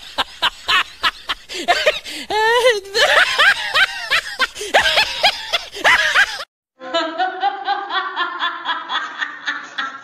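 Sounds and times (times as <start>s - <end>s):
snickering laugh: 2.8s - 6.4s.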